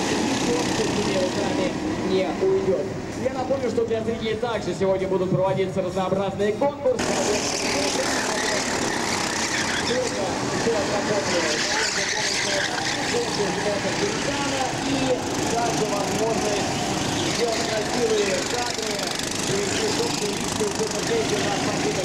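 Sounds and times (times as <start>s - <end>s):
kart engines revving: 0.0s - 5.2s, 6.5s - 22.0s.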